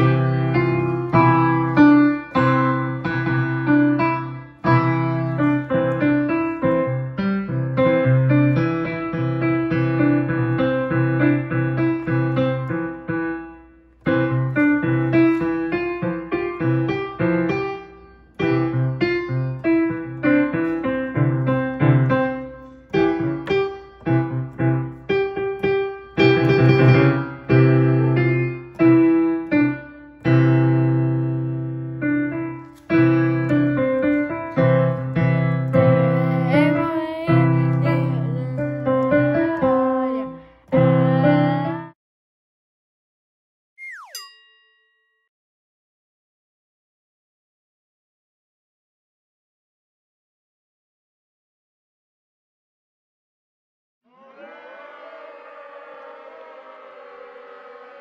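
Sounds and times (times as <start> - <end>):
digital piano melody: 0.0 - 41.9.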